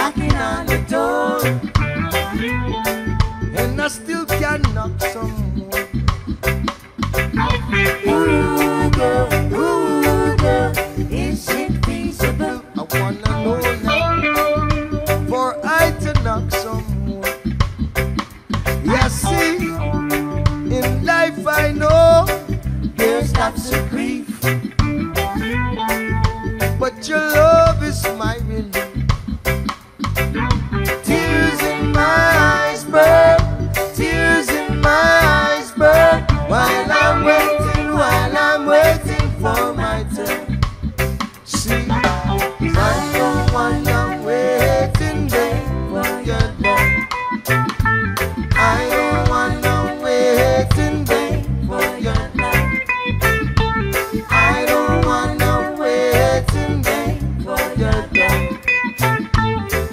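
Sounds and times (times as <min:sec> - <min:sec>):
reggae song with guitar and bass: 0:00.0 - 0:59.9.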